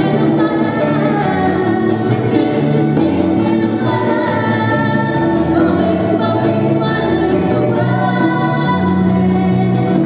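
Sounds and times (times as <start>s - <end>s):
live band playing: 0.0s - 10.0s
woman singing into a microphone: 0.0s - 10.0s.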